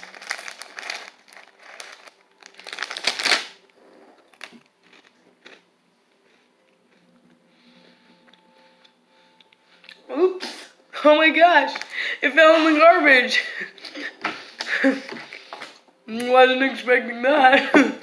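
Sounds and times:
plastic bag crinkling: 0.0s - 5.2s, 11.5s - 12.2s.

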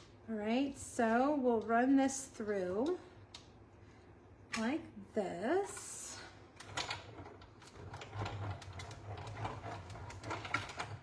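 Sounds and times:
small irregular clicks: 2.8s - 3.6s
hand-cranked machine rollers: 6.6s - 11.0s.

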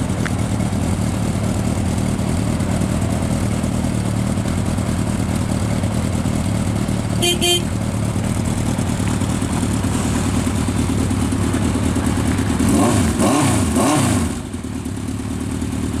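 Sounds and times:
motorcycle engine idling and revving: 0.0s - 16.0s.

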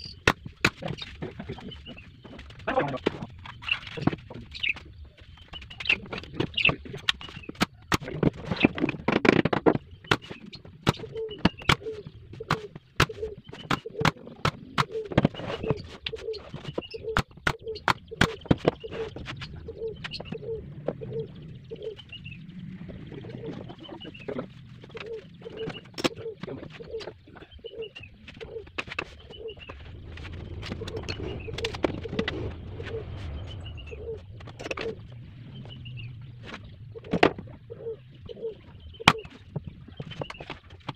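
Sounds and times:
bird calling: 0.0s - 8.9s, 9.7s - 40.9s.

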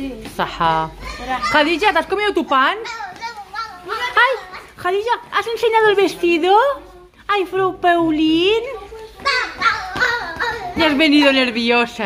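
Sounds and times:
young children talking: 1.0s - 1.8s, 2.8s - 4.8s, 8.7s - 11.4s.

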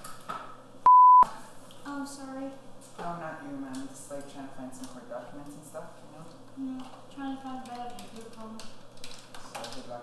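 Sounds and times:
censor beep: 0.9s - 1.3s.

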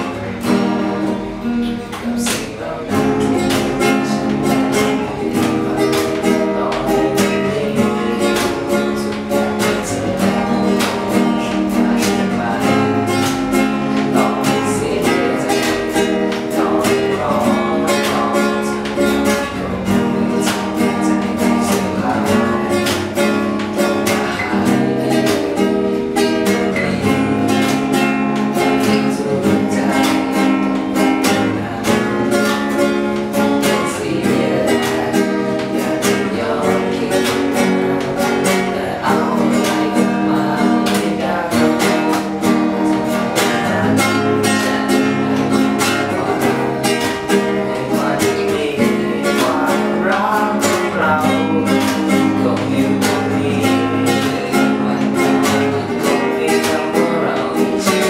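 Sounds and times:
acoustic guitars: 0.0s - 58.0s
boy singing: 0.0s - 58.0s.

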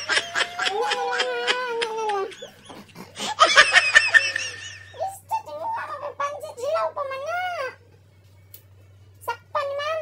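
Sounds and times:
child giggling: 0.0s - 5.0s.

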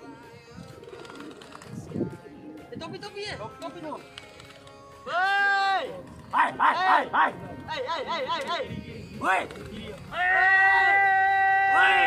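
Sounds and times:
pigeon cooing: 0.0s - 2.7s
background music: 0.0s - 12.0s
people's voices: 0.0s - 12.0s.

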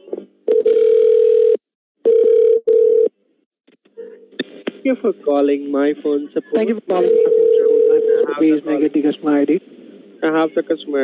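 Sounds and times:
telephone line tones: 0.5s - 3.1s.

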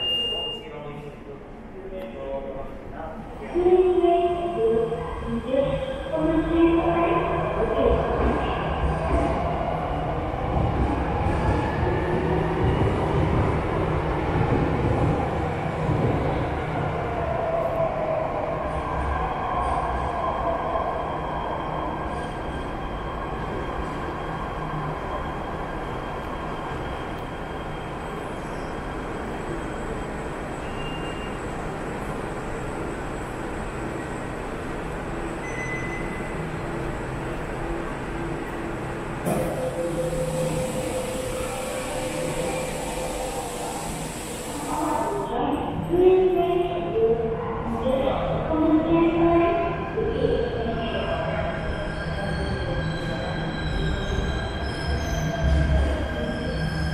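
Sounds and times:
electric train rumbling and whining: 2.7s - 56.9s.

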